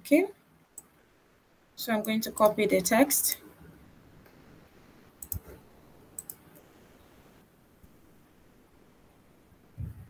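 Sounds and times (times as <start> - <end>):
computer mouse clicking: 5.2 - 5.6, 6.2 - 6.4.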